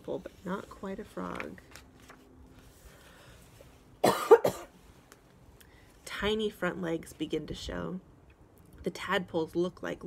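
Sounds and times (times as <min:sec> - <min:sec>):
person coughing: 0:04.0 - 0:04.8.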